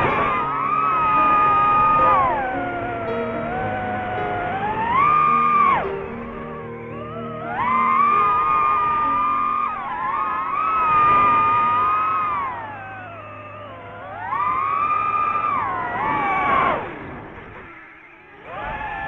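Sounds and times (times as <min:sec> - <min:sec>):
drone propellers whining: 0:00.0 - 0:19.0.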